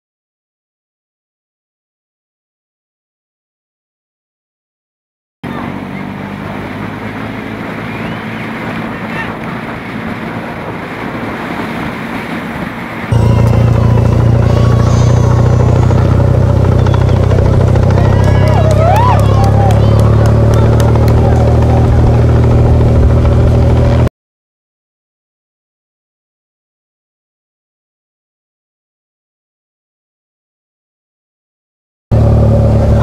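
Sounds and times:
voices calling out: 5.4 - 11.1, 12.8 - 23.3
motorcycle engines droning: 5.4 - 24.1, 32.1 - 33.0
wind noise on microphone: 6.4 - 24.1.

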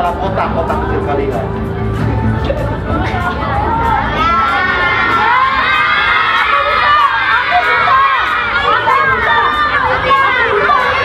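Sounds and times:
children shouting and cheering: 3.0 - 11.0.

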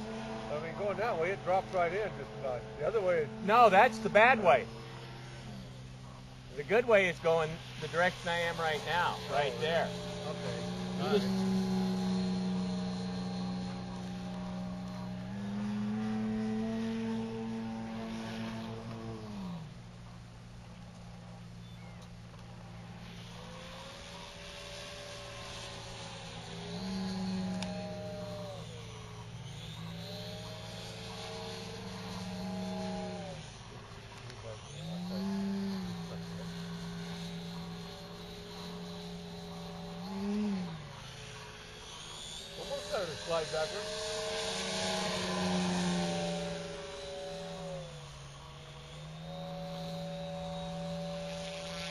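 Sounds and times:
model plane motor droning: 0.0 - 51.9.

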